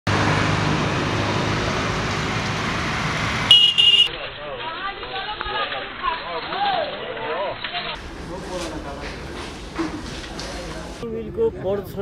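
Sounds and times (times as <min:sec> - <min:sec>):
road traffic: 0:00.0 - 0:12.0
vehicle horn toots: 0:03.5 - 0:04.2.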